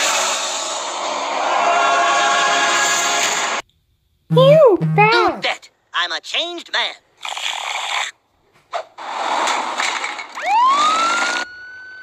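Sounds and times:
cartoon police siren wailing: 0:10.4 - 0:12.0.

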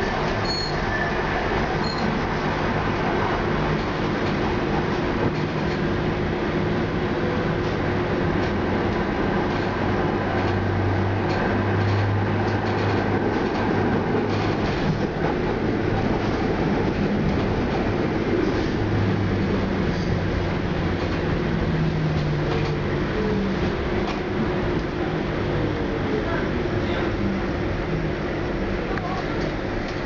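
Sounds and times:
tram rumbling on rails: 0:00.0 - 0:30.0.

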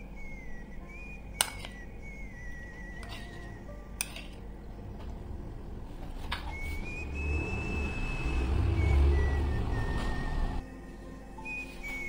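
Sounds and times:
whistled melody: 0:00.0 - 0:12.0
low rumble: 0:03.8 - 0:10.6.

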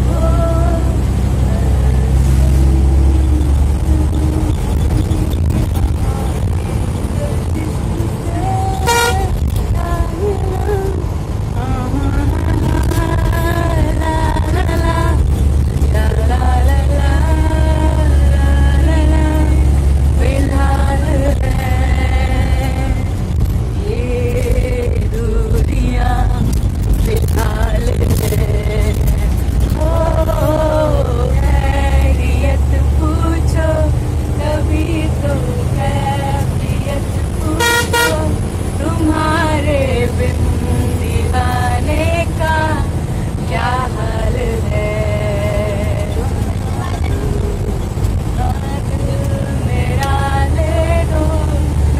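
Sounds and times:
bus engine and tyres rumbling: 0:00.0 - 0:51.9
vehicle horn toots: 0:08.7 - 0:09.4, 0:37.6 - 0:38.3.

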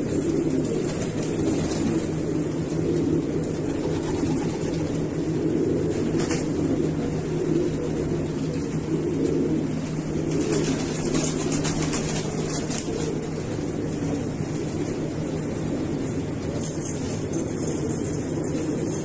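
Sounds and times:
low hum: 0:00.0 - 0:19.0
pigeons cooing: 0:00.0 - 0:19.0.

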